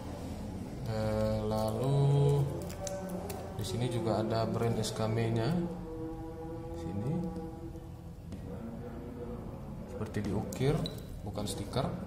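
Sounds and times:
man humming a long note: 5.0s - 9.7s.

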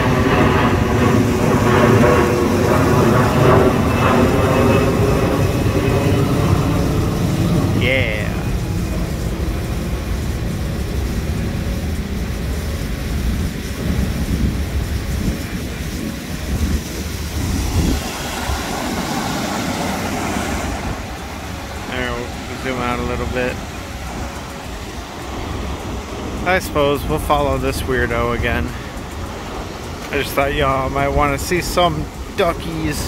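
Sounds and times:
hiss: 0.0s - 33.0s
low rumble: 0.0s - 33.0s.

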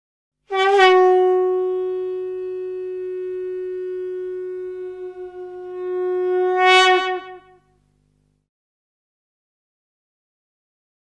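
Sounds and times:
long horn note: 0.5s - 7.7s.

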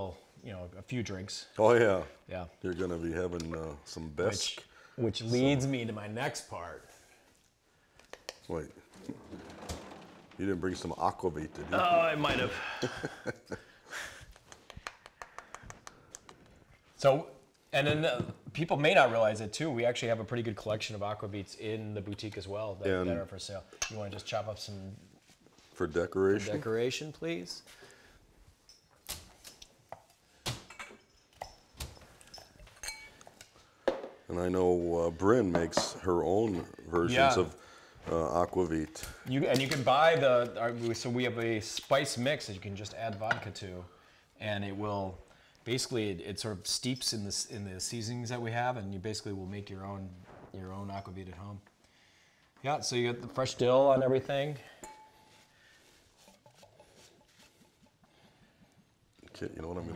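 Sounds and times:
light clinks: 30.8s - 33.5s.

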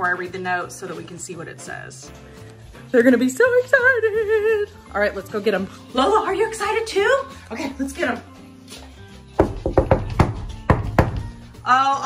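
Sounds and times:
background music low notes: 0.0s - 12.0s.

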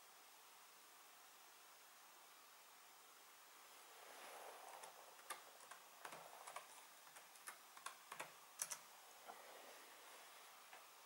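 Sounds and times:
keyboard keystrokes: 4.8s - 8.9s.

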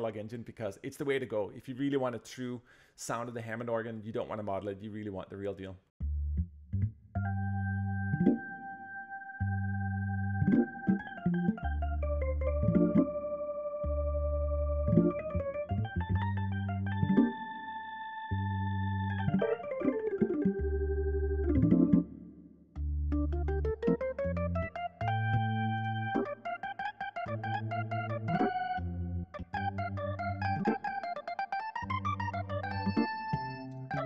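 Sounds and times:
low bass notes: 6.0s - 8.4s, 9.4s - 17.2s, 18.3s - 19.4s, 20.0s - 22.2s, 22.8s - 26.4s, 27.3s - 30.9s, 31.8s - 34.0s
organ playing chords: 7.2s - 34.0s.

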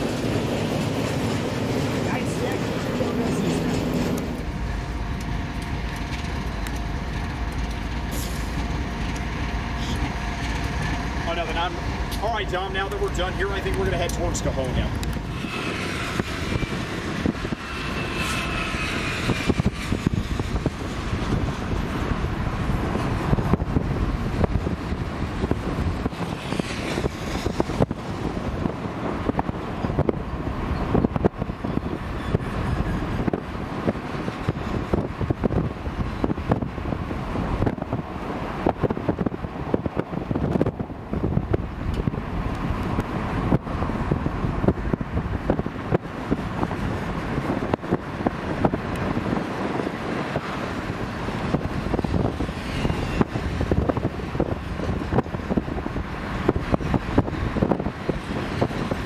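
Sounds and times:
diesel locomotives running: 0.0s - 59.0s
steel wheels rumbling on rail: 0.0s - 59.0s.

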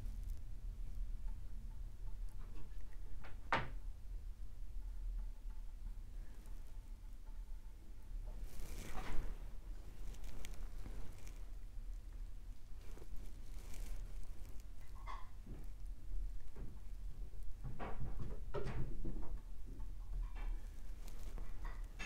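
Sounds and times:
paint brush scuffing on canvas: 8.4s - 11.6s.

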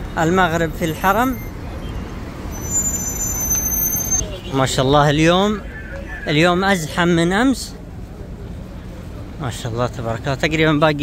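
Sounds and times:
slow road traffic: 0.0s - 11.0s.

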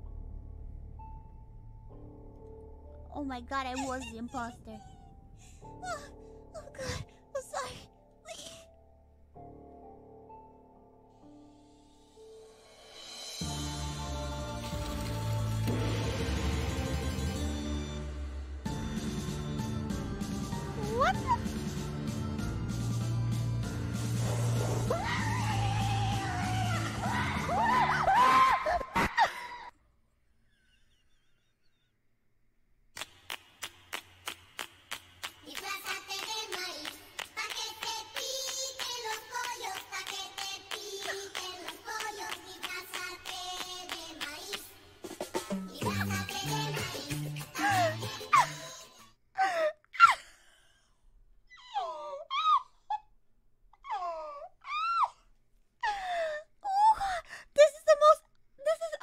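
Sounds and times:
high-pitched voice moaning and whining: 20.7s - 21.5s.

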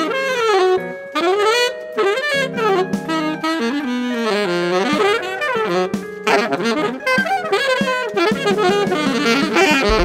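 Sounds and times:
saxophone music: 0.0s - 10.0s.

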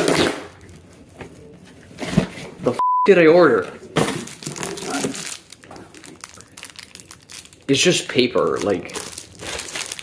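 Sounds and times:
cardboard ripping and rustling: 4.0s - 7.4s, 8.6s - 10.0s.

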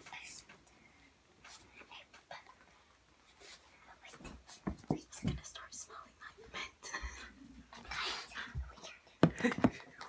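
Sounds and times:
soft whispering: 0.0s - 9.2s.

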